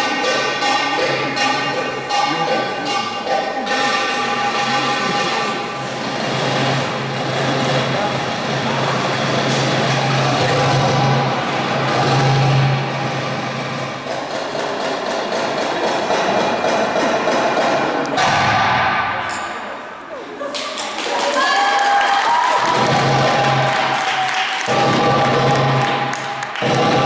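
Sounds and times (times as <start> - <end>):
melody with held notes: 0.0 - 9.4
goblet drum playing: 0.0 - 19.4, 22.6 - 27.0
low drone: 0.8 - 20.2.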